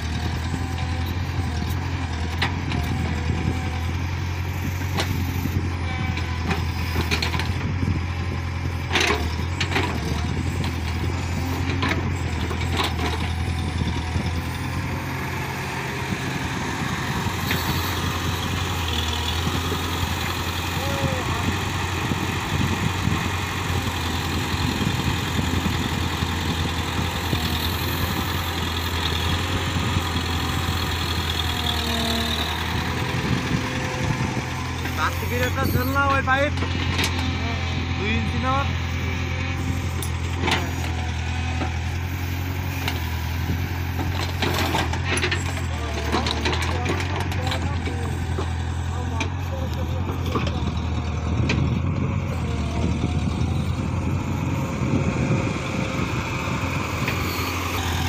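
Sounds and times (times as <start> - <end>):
excavator diesel engine running: 0.0 - 58.0.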